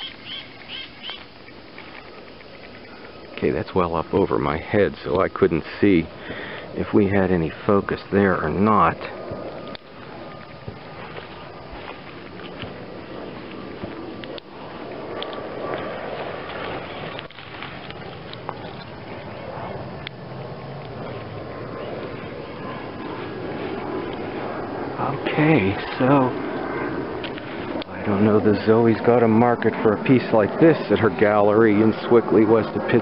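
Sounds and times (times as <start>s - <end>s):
rustles: 0.0s - 32.1s
faint hum: 0.0s - 33.0s.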